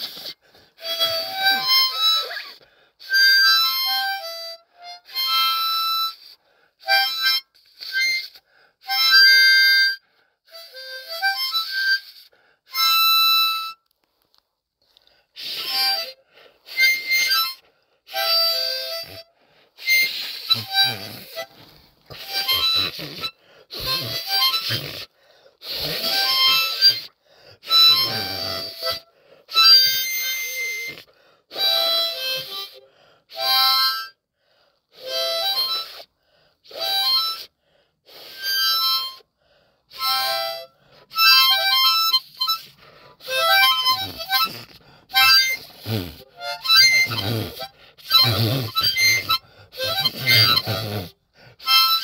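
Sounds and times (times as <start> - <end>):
harmonica playing blues phrases: 0.0 - 13.9, 14.9 - 52.0.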